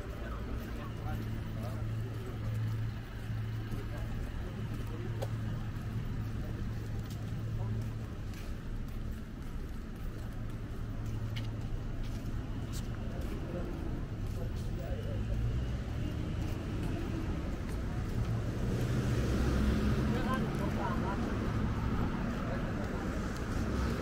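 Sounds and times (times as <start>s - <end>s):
footsteps on pavement: 0.0s - 24.0s
road traffic drone: 0.0s - 24.0s.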